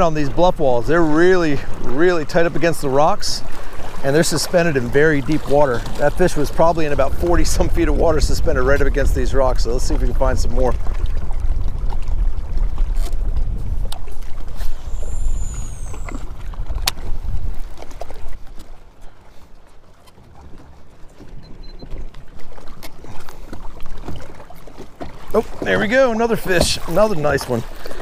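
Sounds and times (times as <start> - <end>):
water lapping at boat hull: 0.0 - 28.0
wind rumbling on microphone: 0.0 - 28.0.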